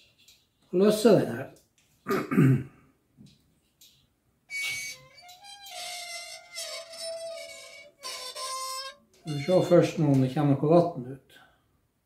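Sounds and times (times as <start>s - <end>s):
drain plug squealing: 4.5s - 10.4s.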